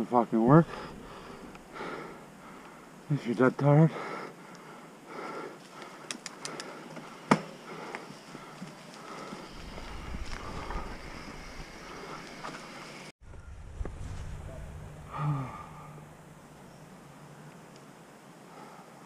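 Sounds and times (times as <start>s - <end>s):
bike tyres on dirt trail: 0.5s - 3.2s, 6.8s - 15.9s
rider breathing: 0.6s - 13.1s, 14.2s - 16.6s
wind on microphone: 9.5s - 12.2s, 13.2s - 16.9s.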